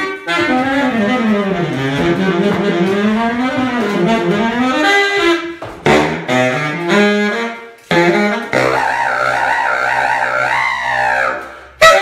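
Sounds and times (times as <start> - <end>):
baritone saxophone low note: 0.0 - 12.0.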